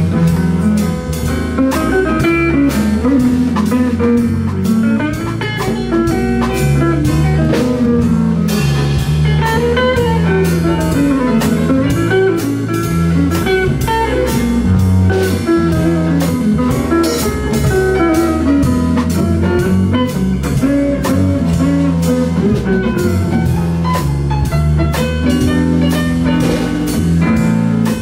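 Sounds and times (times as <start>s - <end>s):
bass: 0.0s - 28.0s
drum kit with cymbal beat: 0.0s - 28.0s
electric guitar melody: 0.0s - 28.0s.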